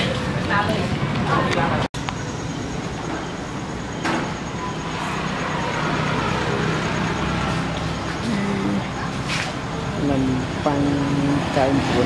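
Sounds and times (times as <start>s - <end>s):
roadside traffic noise: 0.0s - 12.0s
vehicle engine rumbling: 0.0s - 12.0s.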